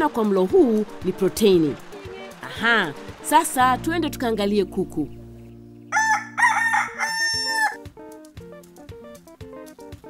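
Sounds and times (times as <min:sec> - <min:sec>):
rooster crowing: 0:05.9 - 0:07.8.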